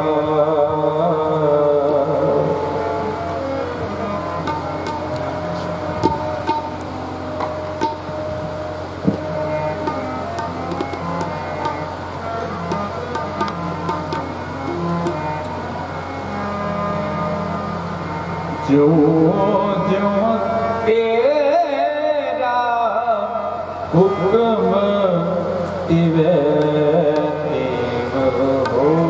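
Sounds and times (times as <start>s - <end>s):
harmonium sustained notes: 0.0s - 29.0s
person singing: 18.6s - 29.0s.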